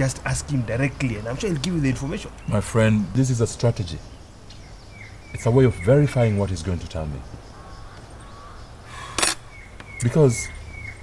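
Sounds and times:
small birds chirping: 0.0 - 11.0
crow cawing: 7.4 - 9.6.

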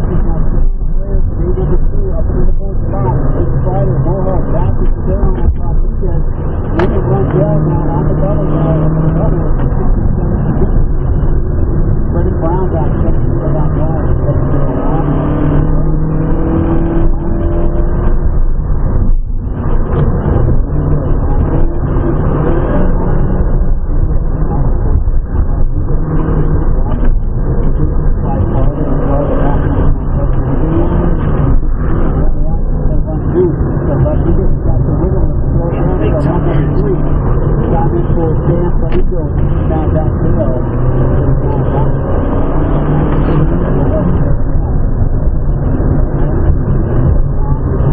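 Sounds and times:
car engine revving: 0.0 - 47.9
tyre and road noise: 0.0 - 47.9.

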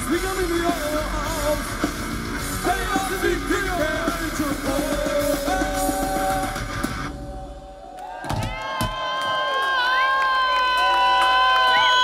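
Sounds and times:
rock band playing: 0.0 - 7.7.

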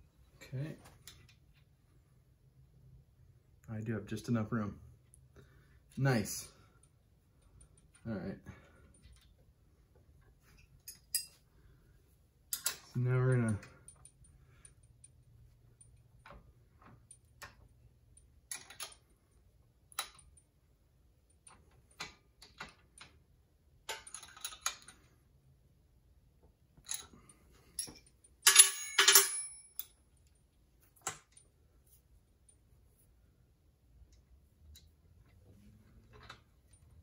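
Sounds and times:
metallic clicks and clinks: 10.5 - 11.4, 12.5 - 19.1, 23.9 - 25.0, 26.8 - 30.4.

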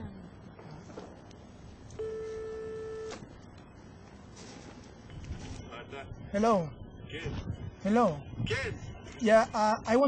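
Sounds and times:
payphone line beep: 2.0 - 3.2.

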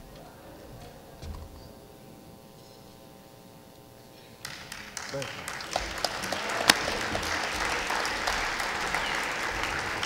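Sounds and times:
faint steady hum: 0.0 - 10.0
audience applause: 4.4 - 10.0.

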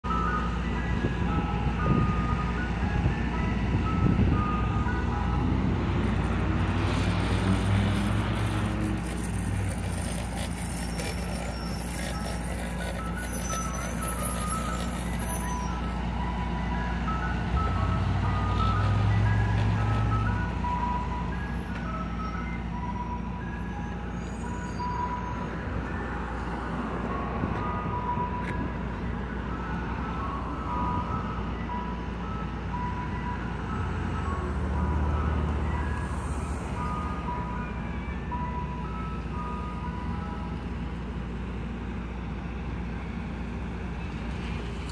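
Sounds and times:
ice cream truck chime jingle: 0.0 - 44.2
truck engine hum: 0.0 - 44.9.

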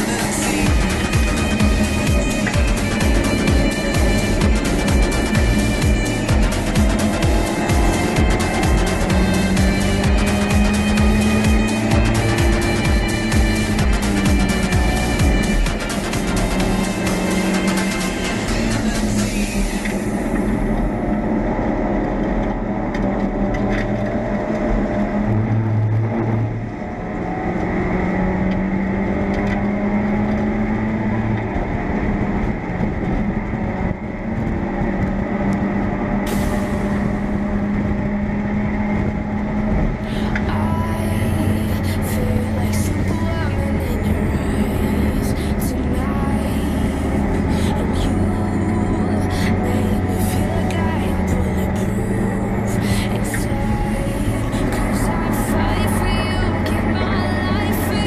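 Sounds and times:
race car engine running hard: 0.0 - 58.0
wind and road noise: 0.0 - 58.0.

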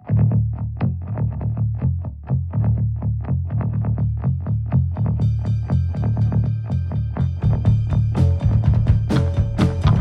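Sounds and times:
bass guitar: 0.0 - 10.0
distorted electric guitar riff: 0.0 - 10.0.

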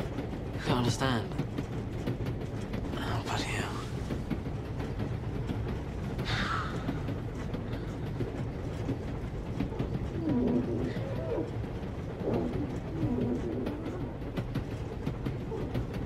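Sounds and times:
train carriage rumble: 0.0 - 16.0.

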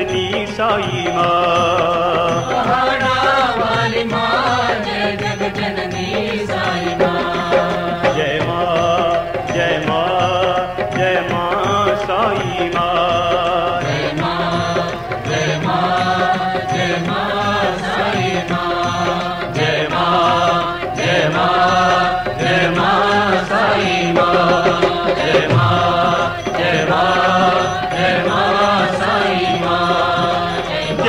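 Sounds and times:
devotional song with instruments: 0.0 - 31.0.

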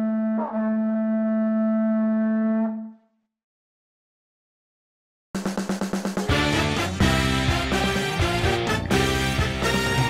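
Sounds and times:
horn blowing steady note: 6.4 - 10.0.

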